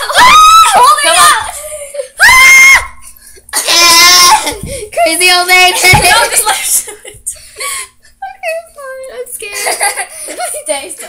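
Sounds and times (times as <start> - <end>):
girls screaming in play: 0.0 - 1.6, 2.2 - 3.0, 3.6 - 4.6.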